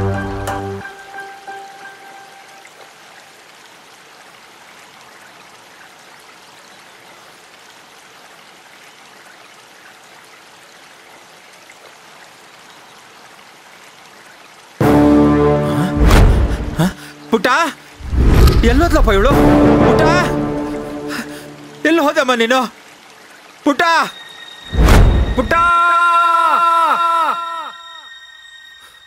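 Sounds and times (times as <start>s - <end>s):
faint ambient hiss: 16.9s - 25.6s.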